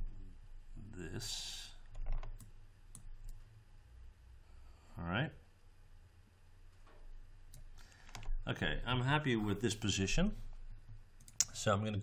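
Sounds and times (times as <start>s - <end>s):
faint low hum: 0.0s - 12.0s
computer mouse clicks: 1.8s - 3.4s, 7.5s - 8.4s, 11.2s - 12.0s.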